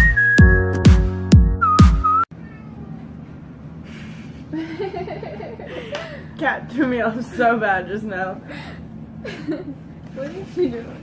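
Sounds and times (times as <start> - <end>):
music: 0.0 - 2.3
cat meowing: 2.3 - 3.0.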